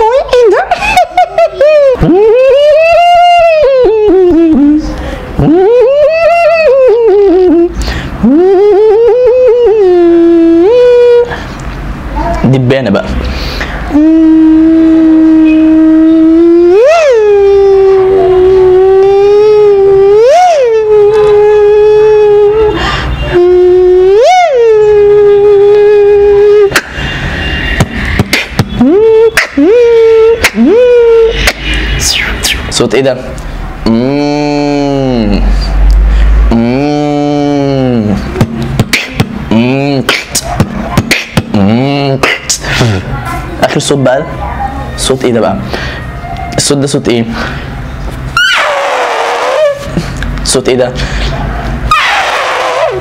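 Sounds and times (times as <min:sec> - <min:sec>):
man making mouth sound effect: 0:00.0 - 0:11.7, 0:13.6 - 0:44.0, 0:48.1 - 0:50.8, 0:51.9 - 0:53.0.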